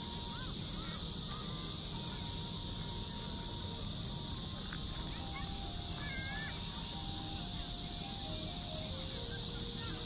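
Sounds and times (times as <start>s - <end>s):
faint steady tone: 0.0s - 10.0s
high hiss: 0.0s - 10.0s.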